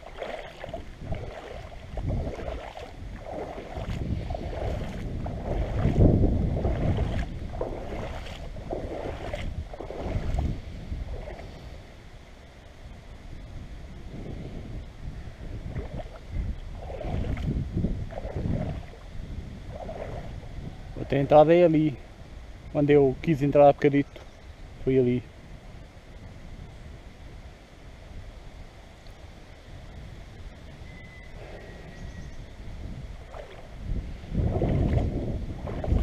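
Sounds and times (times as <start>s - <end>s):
river water splashing: 0.0s - 12.8s, 15.6s - 21.7s, 33.0s - 36.0s
low microphone rumble: 0.0s - 22.6s, 29.4s - 36.0s.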